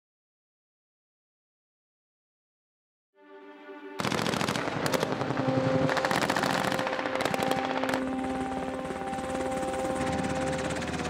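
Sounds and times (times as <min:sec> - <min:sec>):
automatic weapon fire: 0:04.0 - 0:05.3.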